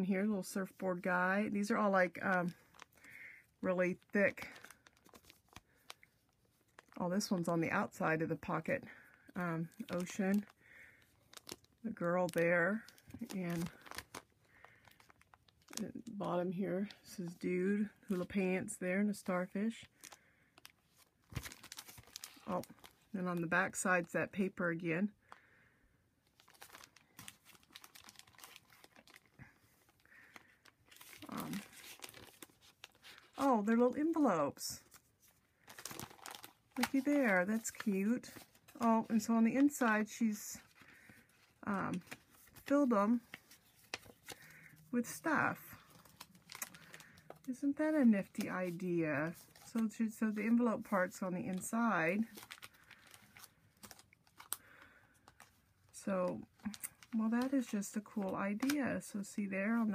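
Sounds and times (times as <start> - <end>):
soft plastic rustle: 0.4 - 24.5, 26.2 - 59.9
plastic page crinkling: 1.0 - 17.4, 19.1 - 24.5, 26.2 - 58.8.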